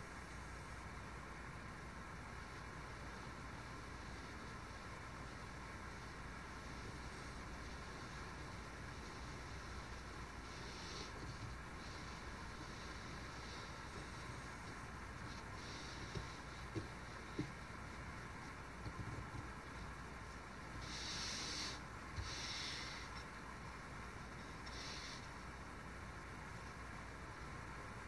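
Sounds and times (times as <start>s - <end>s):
low background hiss: 0.0s - 28.0s.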